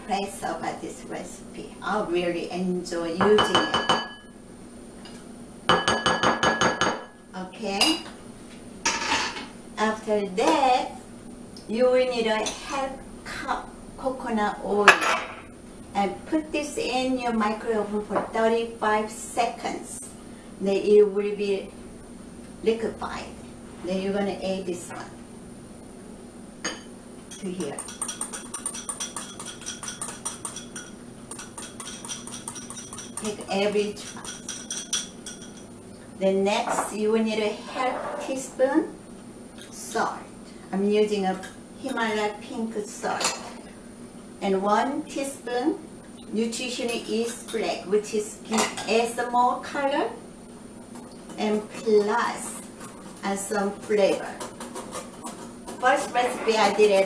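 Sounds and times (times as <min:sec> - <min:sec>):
spatula clinking on glass: 0:27.3 - 0:35.7
utensil scraping a glass bowl: 0:27.4 - 0:35.6, 0:51.0 - 0:57.0.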